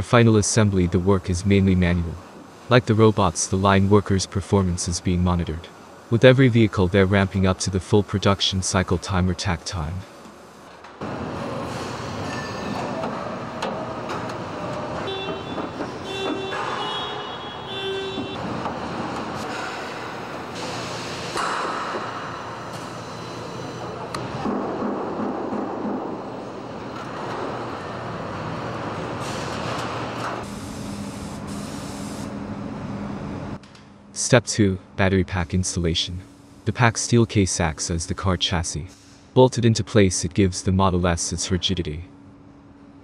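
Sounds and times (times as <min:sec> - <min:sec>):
hissing air: 0:30.4 - 0:32.3.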